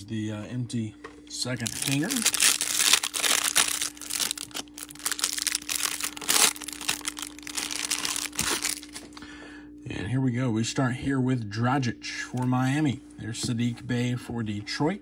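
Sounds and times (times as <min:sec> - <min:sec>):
plastic wrapper crinkling: 0:01.6 - 0:09.2.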